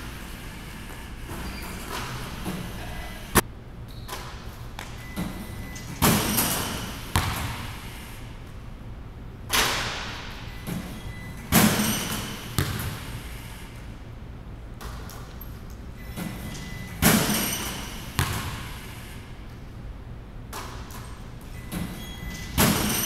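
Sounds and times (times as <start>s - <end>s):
sharp crack in gym: 3.3s - 7.8s, 9.5s - 10.5s, 11.4s - 13.3s, 14.8s - 15.8s, 20.5s - 21.3s
ball hitting rim and backboard: 4.1s - 7.8s, 9.5s - 13.2s, 16.2s - 18.9s, 20.5s - 23.0s
basketball bouncing on hardwood: 7.1s - 7.6s, 12.6s - 12.9s, 18.2s - 18.7s.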